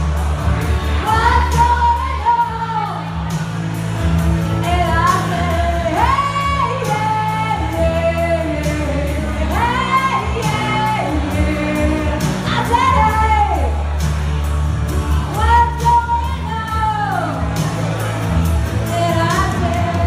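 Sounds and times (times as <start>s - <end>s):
backing music with bass and drums: 0.0s - 20.0s
woman singing into microphone: 1.0s - 3.2s, 4.6s - 13.8s, 15.3s - 17.5s, 18.8s - 20.0s.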